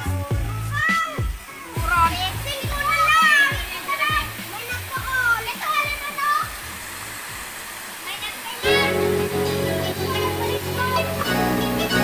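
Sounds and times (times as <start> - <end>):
waterfall pouring into pool: 0.0 - 12.0
children calling: 0.1 - 6.8, 7.9 - 12.0
music with held notes: 8.6 - 12.0.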